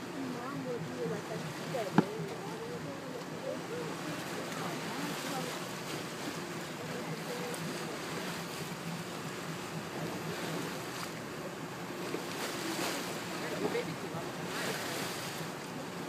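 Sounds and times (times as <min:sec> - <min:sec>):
faint voices: 0:00.0 - 0:16.0
sea water wash: 0:00.0 - 0:16.0.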